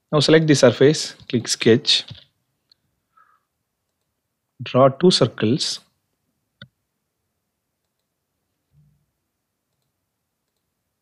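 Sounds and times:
faint mouse clicks: 3.8s - 4.2s, 7.8s - 8.2s, 9.7s - 10.7s.

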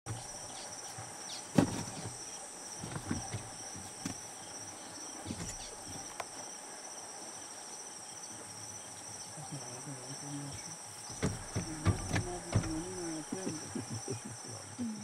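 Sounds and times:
insect chorus: 0.1s - 15.0s
soft knocks: 1.5s - 2.2s, 2.8s - 4.2s, 11.1s - 13.3s
sharp thump: 11.1s - 13.1s.

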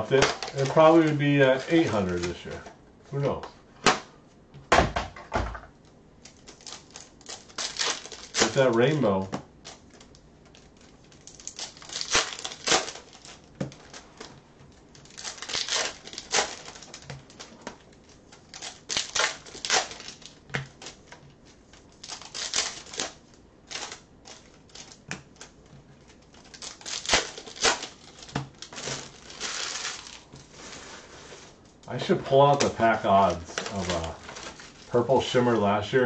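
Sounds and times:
foil wrappers crinkling and tearing: 0.0s - 3.4s, 6.2s - 36.0s
cards being handled and sorted: 0.0s - 4.4s, 5.7s - 36.0s.

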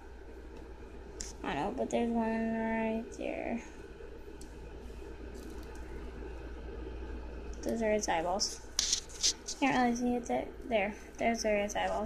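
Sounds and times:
faint hiss: 0.0s - 12.0s
low steady hum: 0.0s - 12.0s.

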